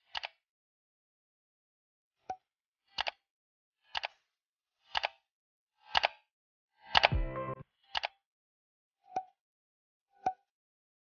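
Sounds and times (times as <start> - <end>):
countdown timer ticking: 7.0 - 7.6.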